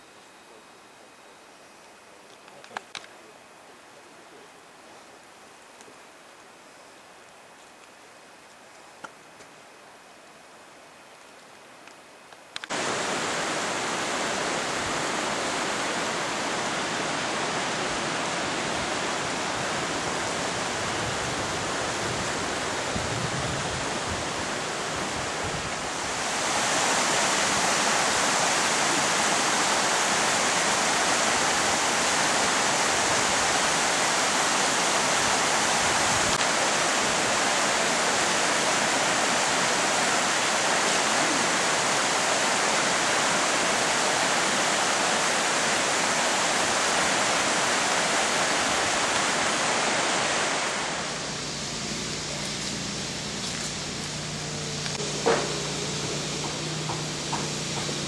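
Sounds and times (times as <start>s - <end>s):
river water rushing: 5.2s - 58.0s.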